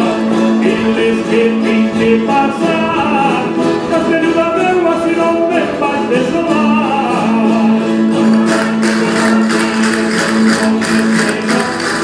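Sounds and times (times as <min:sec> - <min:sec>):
guitars and plucked strings: 0:00.0 - 0:12.0
sharp rhythmic clatter: 0:08.2 - 0:12.0.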